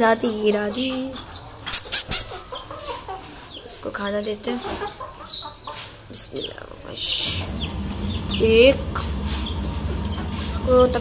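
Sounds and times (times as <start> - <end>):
young chickens calling: 0.0 - 11.0.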